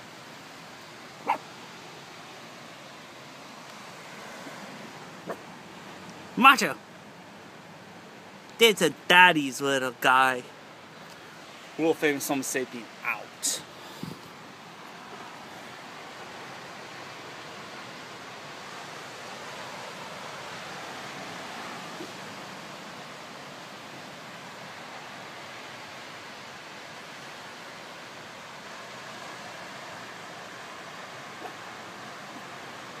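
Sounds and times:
steady outdoor rushing noise: 0:00.0 - 0:33.0.

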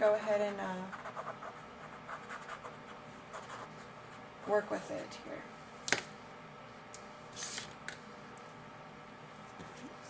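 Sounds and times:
pen scratching on paper: 0:00.9 - 0:03.8.

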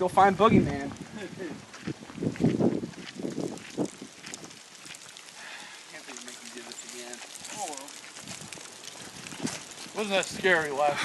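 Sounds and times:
footsteps on pavement: 0:00.2 - 0:11.0
men laughing and talking: 0:01.1 - 0:01.6, 0:10.0 - 0:11.0.

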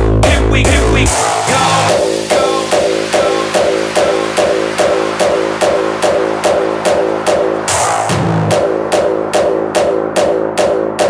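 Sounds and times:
kick drum: 0:00.0 - 0:11.0
synth bass line: 0:00.0 - 0:11.0.

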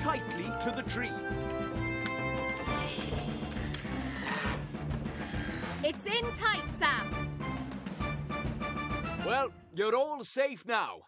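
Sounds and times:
cartoon background music: 0:00.0 - 0:10.0.

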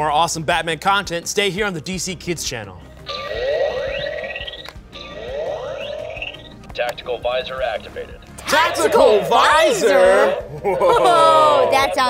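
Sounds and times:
electronic rising sweep: 0:03.1 - 0:06.6.

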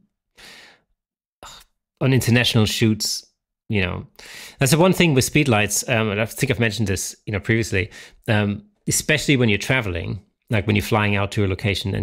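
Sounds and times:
man breathing in at microphone: 0:00.4 - 0:00.9, 0:04.2 - 0:04.6.

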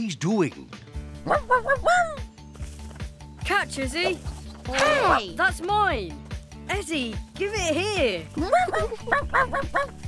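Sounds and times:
background music: 0:00.0 - 0:10.0
cartoon dog barking: 0:01.2 - 0:02.2, 0:08.6 - 0:10.0.

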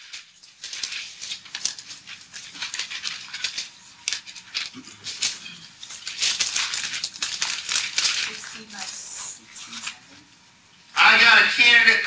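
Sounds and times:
pages being leafed through: 0:00.0 - 0:10.2.

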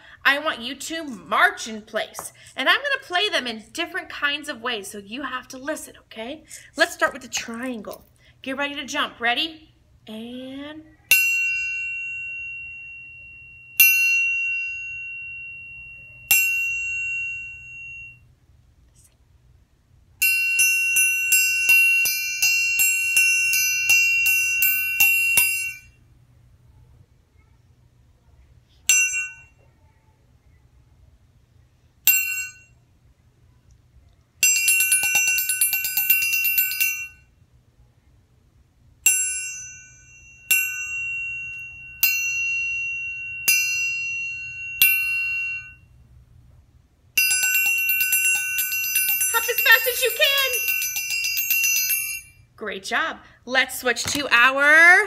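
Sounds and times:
metal triangle struck: 0:11.1 - 0:18.3, 0:20.2 - 0:26.0, 0:28.9 - 0:29.6, 0:32.1 - 0:32.8, 0:39.0 - 0:46.0, 0:47.2 - 0:52.5.

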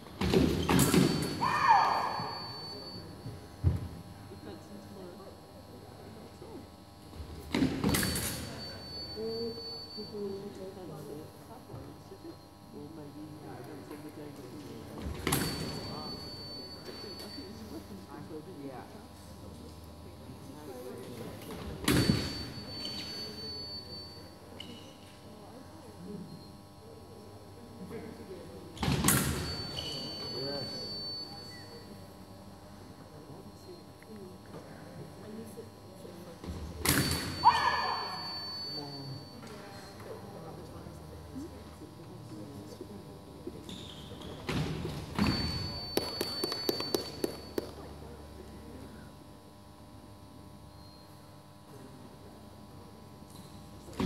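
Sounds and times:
steady high beep: 0:37.4 - 0:40.0, 0:45.2 - 0:47.8
high-pitched beep: 0:45.2 - 0:47.6.

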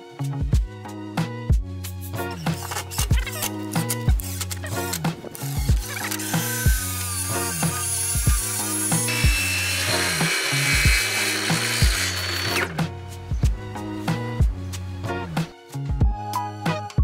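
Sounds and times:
background music with beat: 0:00.0 - 0:09.6, 0:10.2 - 0:17.0
cordless driver running: 0:05.4 - 0:12.8
circular saw cutting wood: 0:05.4 - 0:12.9.

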